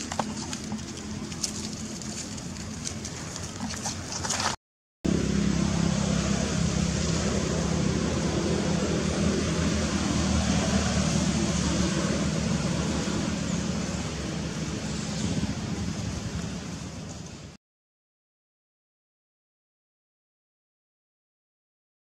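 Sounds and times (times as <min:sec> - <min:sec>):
engine hum: 0:00.0 - 0:17.6
motor traffic rumble: 0:00.0 - 0:17.6.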